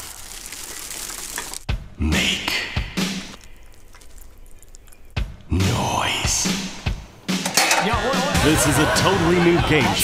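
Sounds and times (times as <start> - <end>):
plastic trash bag rustling: 0.0 - 1.7.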